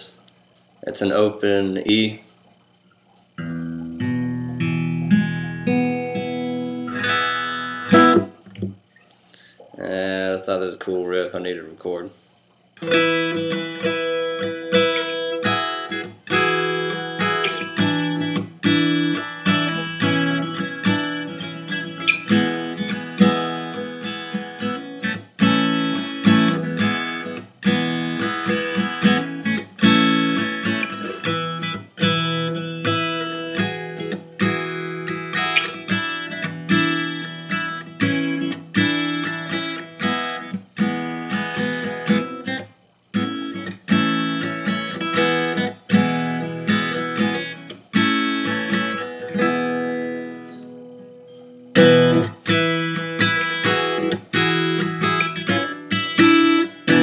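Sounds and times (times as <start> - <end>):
acoustic guitar riff: 3.4 - 10.6, 12.8 - 57.0.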